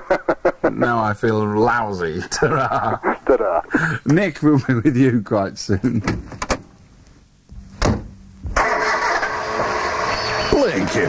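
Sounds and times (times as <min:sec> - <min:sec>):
thump: 0:07.6 - 0:08.6
car engine starting and running: 0:07.8 - 0:11.0.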